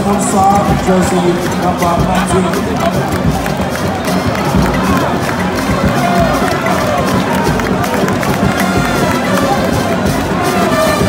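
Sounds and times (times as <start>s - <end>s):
music: 0.0s - 11.0s
stadium crowd din: 0.0s - 11.0s.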